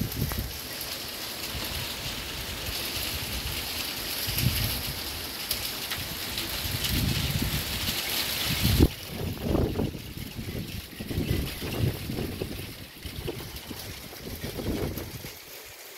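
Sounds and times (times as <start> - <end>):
hail pattering on glass: 0.0 - 15.9
low gusty rumbles: 6.0 - 7.9.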